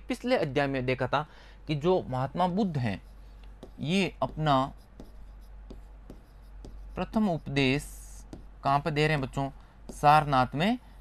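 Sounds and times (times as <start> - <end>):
pen scratching on a board: 2.7 - 10.3.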